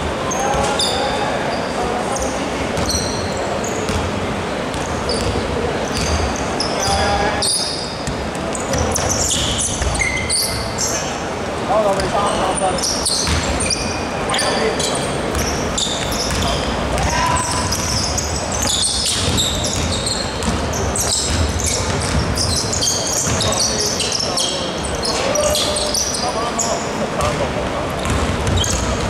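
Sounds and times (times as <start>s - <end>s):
sneakers squeaking on floor: 0.2s - 11.2s, 11.8s - 29.0s
basketball dribbling: 4.7s - 6.3s, 13.2s - 13.7s, 15.3s - 23.7s, 28.0s - 29.0s.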